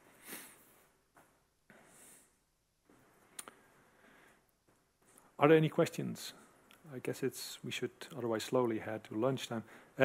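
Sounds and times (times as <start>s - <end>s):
faint sharp clicks: 3.3s - 3.7s.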